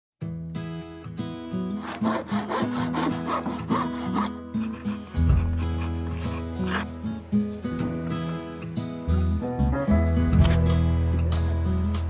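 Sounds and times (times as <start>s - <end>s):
background music: 0.5s - 12.0s
handsaw cutting wood: 1.8s - 7.0s.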